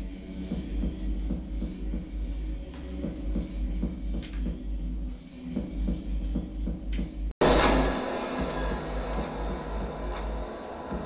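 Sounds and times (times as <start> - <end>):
experimental electronic music: 0.0 - 11.0.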